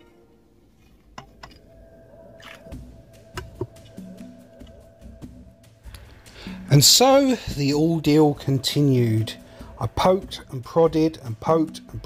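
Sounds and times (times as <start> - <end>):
quiet background music: 0.0 - 12.0
rod knocking inside hollow tube: 2.4 - 4.8.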